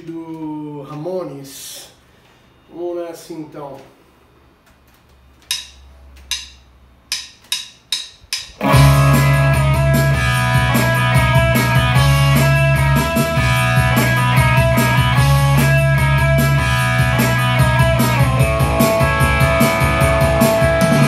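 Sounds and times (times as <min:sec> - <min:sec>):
rock song with electric guitar: 0:08.6 - 0:21.0.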